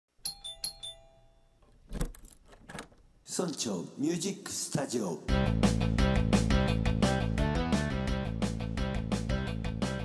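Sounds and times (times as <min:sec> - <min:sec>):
bell-like chime jingle: 0:00.2 - 0:01.6.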